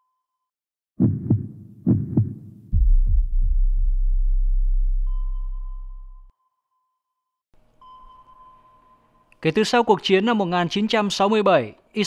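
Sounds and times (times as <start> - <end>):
deep bass rumble: 2.2 - 6.3
thin electronic ping tone: 5.1 - 6.3, 7.8 - 9.3.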